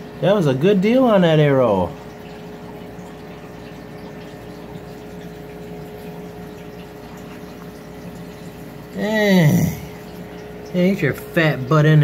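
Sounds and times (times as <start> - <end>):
aquarium pump humming: 0.0 - 12.0
moving water: 0.0 - 12.0.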